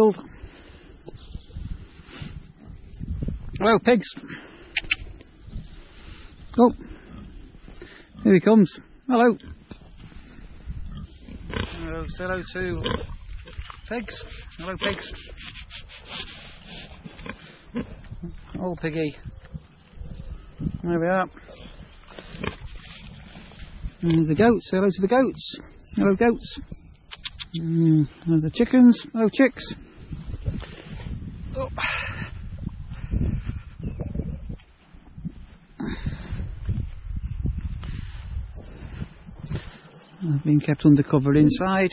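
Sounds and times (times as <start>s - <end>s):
wind on microphone: 0.0s - 7.8s, 9.4s - 24.6s, 25.6s - 28.7s, 29.5s - 40.2s
pig snuffling: 4.4s - 18.6s, 19.3s - 24.4s
pigs grunting: 10.8s - 13.3s.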